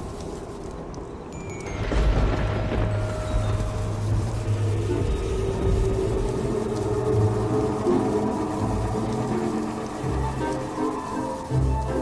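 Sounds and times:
sustained held notes: 0:01.3 - 0:12.0
deep low rumble: 0:02.0 - 0:10.6.

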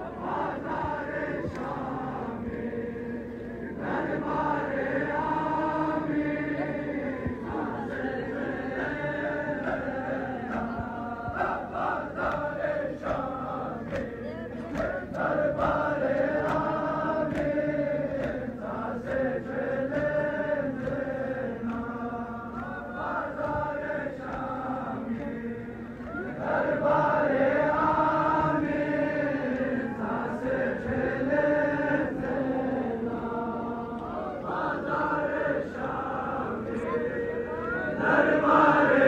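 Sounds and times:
men chanting a lament: 0:00.0 - 0:39.0.

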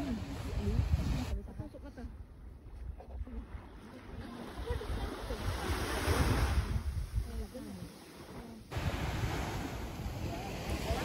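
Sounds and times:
small waves washing onto sand: 0:00.0 - 0:01.4, 0:03.4 - 0:11.0
wind buffeting microphone: 0:00.0 - 0:03.6, 0:04.6 - 0:07.8.

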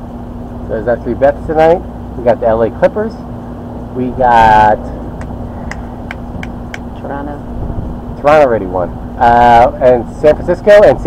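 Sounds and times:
rumbling background: 0:00.0 - 0:11.0
steady low hum: 0:00.0 - 0:11.0.

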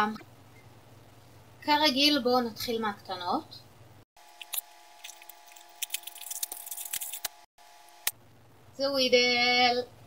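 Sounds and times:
faint steady hum: 0:00.0 - 0:10.0
plastic packaging crinkling: 0:04.4 - 0:07.4.

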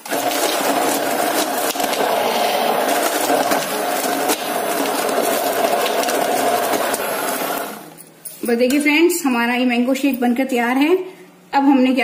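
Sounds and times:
electric hand blender running: 0:00.0 - 0:07.8.

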